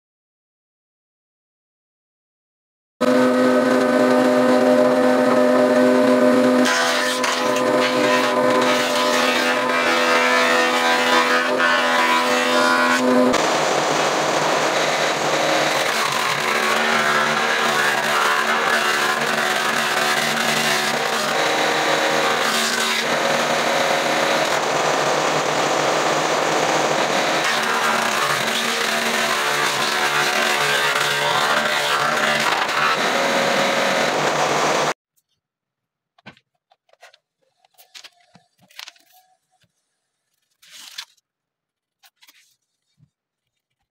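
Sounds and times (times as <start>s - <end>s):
jointer motor humming: 3.0s - 35.0s
planer cutting wooden board: 3.0s - 35.0s.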